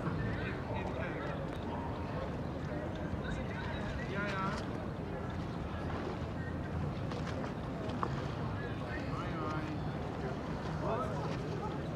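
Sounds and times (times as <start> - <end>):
faint voices talking: 0.0 - 11.9.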